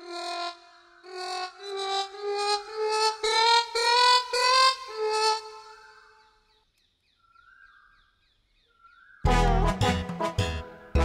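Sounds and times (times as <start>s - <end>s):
melodic instrument short notes: 9.3s - 11.0s.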